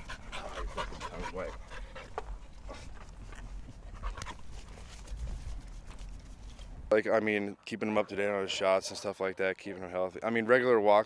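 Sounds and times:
dog panting: 0.0 - 5.8, 7.7 - 9.2.

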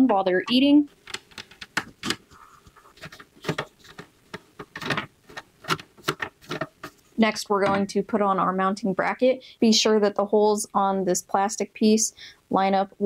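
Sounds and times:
plastic parts clicking and knocking: 0.1 - 7.0.

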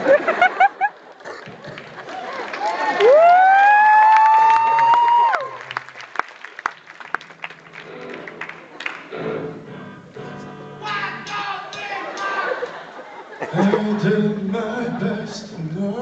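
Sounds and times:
scattered clapping: 0.8 - 9.1
audience cheering: 1.6 - 9.1, 10.8 - 13.8
person shouting woo: 3.0 - 5.6.

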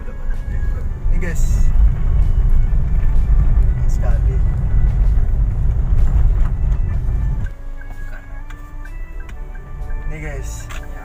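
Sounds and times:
car engine rumble from inside cabin: 0.0 - 11.0
faint music with held notes: 0.0 - 11.0.

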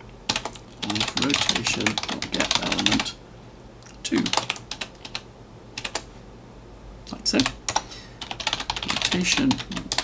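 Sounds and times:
computer keyboard keys clicking: 0.3 - 3.1, 4.2 - 5.2, 5.8 - 6.1, 7.4 - 10.0.

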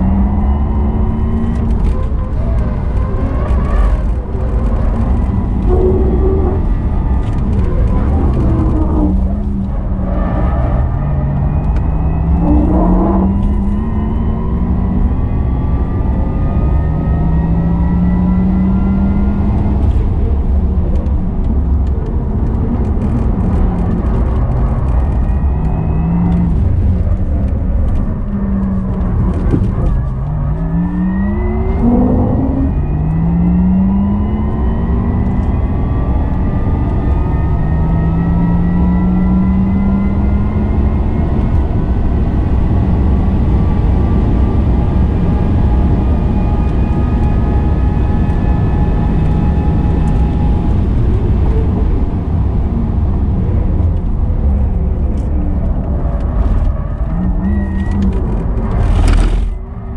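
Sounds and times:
road and wind rumble: 0.0 - 59.9.

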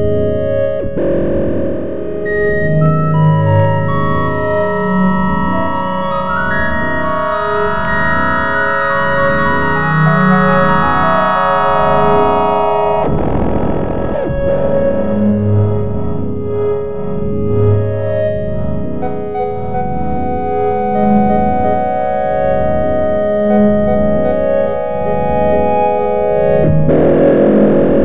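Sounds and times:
synthesizer sustained chord: 0.0 - 28.0
downward pitch glide: 0.9 - 13.2.

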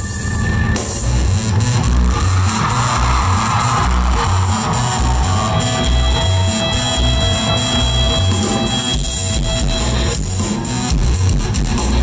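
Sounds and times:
electric bass guitar notes: 0.0 - 12.0
live rock band playing: 0.0 - 12.0.

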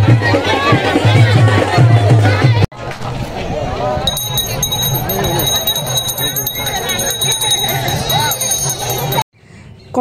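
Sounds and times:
crowd voices: 0.0 - 9.2.

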